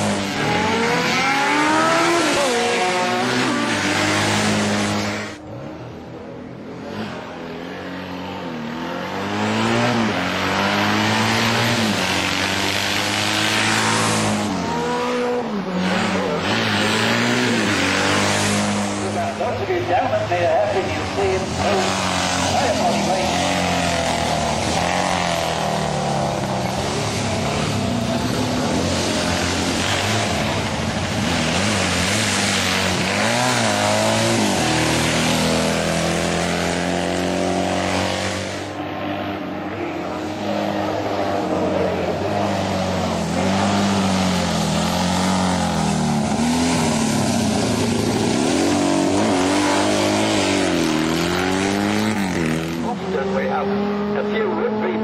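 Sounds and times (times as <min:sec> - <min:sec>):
racing engines at full throttle: 0:00.0 - 0:55.0.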